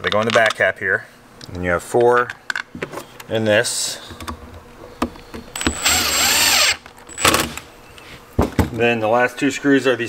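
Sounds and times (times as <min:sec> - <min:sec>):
power driver whining: 0:05.5 - 0:07.7.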